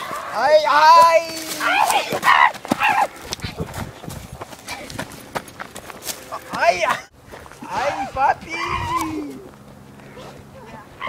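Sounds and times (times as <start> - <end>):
thuds and scuffs on dirt trail: 0.0 - 10.4.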